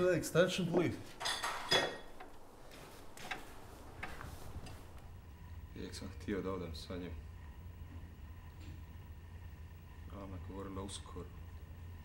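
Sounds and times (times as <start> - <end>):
faint irregular clicks: 2.2 - 5.6.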